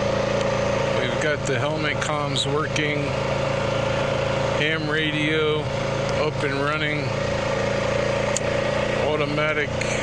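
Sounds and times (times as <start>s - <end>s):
atv engine running: 0.0s - 10.0s
steady whine: 0.0s - 10.0s.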